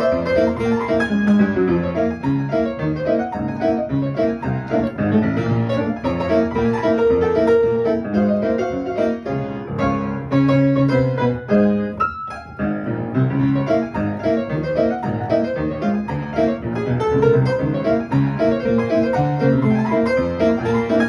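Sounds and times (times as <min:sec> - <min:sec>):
ragtime piano playing: 0:00.0 - 0:21.0.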